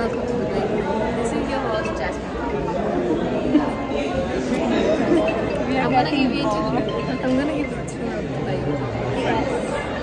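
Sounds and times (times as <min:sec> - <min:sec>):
chatter of people: 0:00.0 - 0:10.0.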